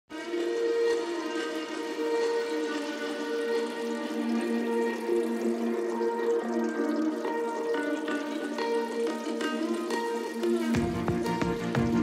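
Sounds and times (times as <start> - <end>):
intro music with sustained notes: 0.1 - 12.0.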